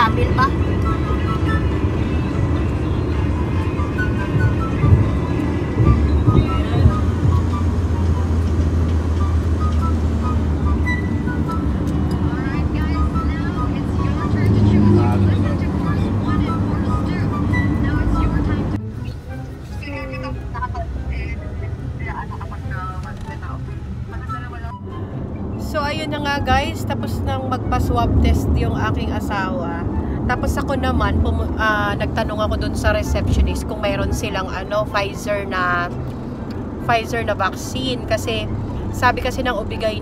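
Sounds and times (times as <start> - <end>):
background music: 0.0 - 40.0
car road and engine rumble: 0.0 - 40.0.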